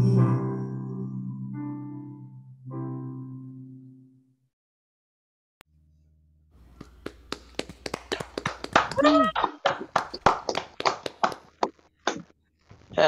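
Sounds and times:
people clapping: 6.8 - 12.3
person calling out: 8.9 - 9.4.

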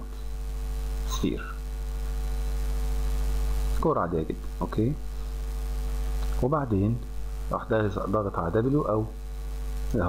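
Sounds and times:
electrical mains hum: 0.0 - 10.0
man speaking: 1.1 - 1.6, 3.8 - 5.1, 6.4 - 9.2.

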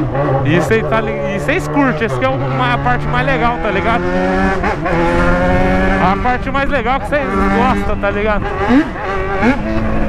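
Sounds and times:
motorcycle engine accelerating: 0.0 - 10.0.

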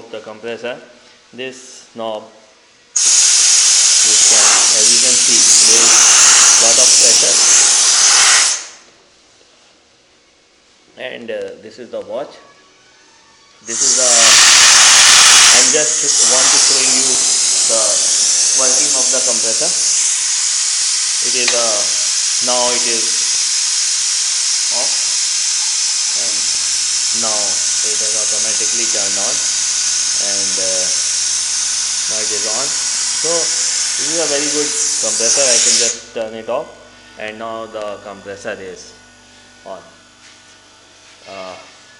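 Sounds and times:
compressed air hissing from valve: 2.9 - 8.9, 13.7 - 36.1.

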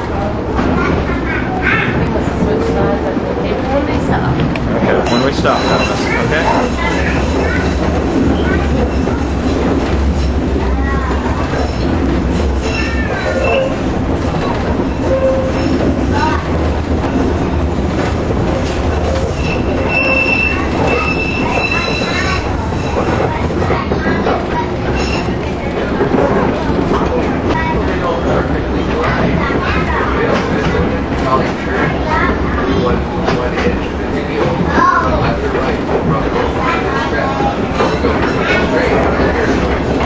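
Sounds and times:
streetcar wheels rumbling: 0.0 - 40.0
high wheel squeal: 5.1 - 7.9, 12.6 - 13.9, 14.8 - 16.4, 18.6 - 23.4, 24.8 - 25.5.

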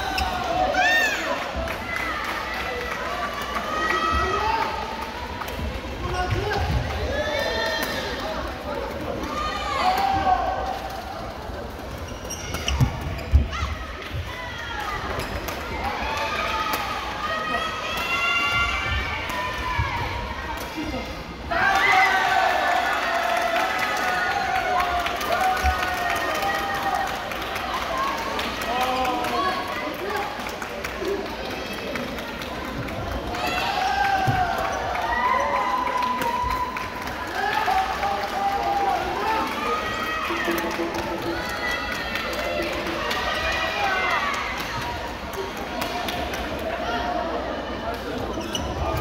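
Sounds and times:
voices and chatter: 0.0 - 49.0
shoes squeaking on court floor: 11.9 - 13.5, 48.2 - 49.0.

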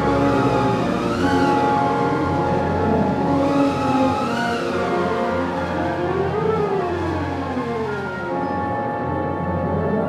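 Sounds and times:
wind band sustained chords: 0.0 - 10.0.

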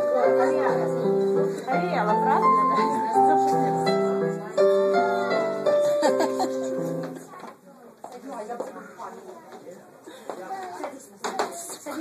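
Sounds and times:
keyboard playing held chords: 0.0 - 7.3
small children chattering: 0.0 - 12.0.

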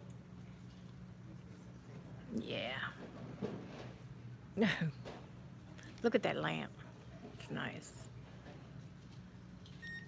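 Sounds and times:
low hum of indoor space: 0.0 - 10.0.

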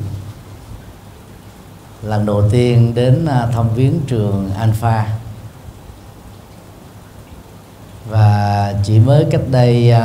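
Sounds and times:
room noise hiss: 0.0 - 10.0.

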